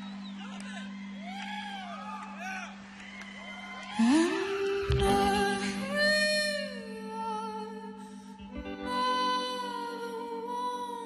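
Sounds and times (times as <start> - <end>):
woman singing a long note: 3.9 - 11.0.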